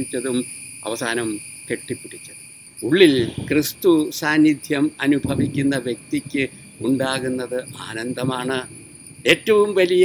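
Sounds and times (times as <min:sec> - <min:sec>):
high-pitched insect drone: 0:00.0 - 0:10.0
man speaking: 0:00.0 - 0:10.0.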